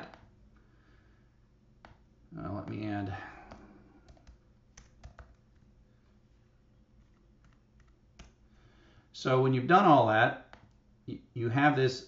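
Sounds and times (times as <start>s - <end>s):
computer keyboard keystrokes: 3.4s - 5.7s, 7.4s - 8.4s, 10.5s - 10.8s.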